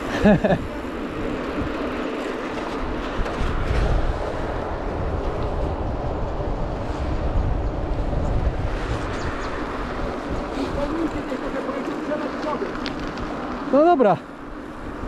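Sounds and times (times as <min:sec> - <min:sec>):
wind on microphone: 0:00.0 - 0:13.7
bike tyres rolling on asphalt: 0:00.0 - 0:15.0.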